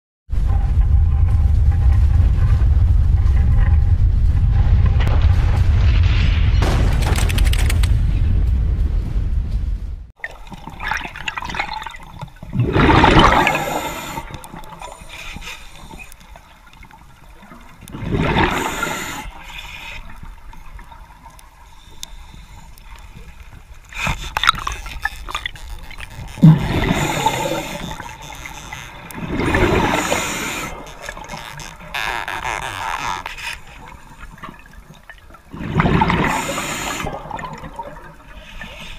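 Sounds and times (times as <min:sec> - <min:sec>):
sharp clicks: 0:06.9 - 0:08.1
underwater air bubbles: 0:10.2 - 0:32.1, 0:33.6 - 0:38.9.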